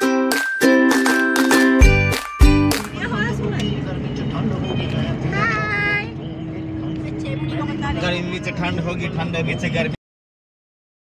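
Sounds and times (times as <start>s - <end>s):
car engine and road rumble: 1.8s - 10.0s.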